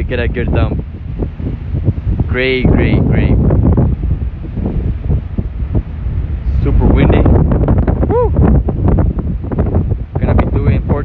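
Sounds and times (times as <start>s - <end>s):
wind gusting against microphone: 0.0s - 11.0s.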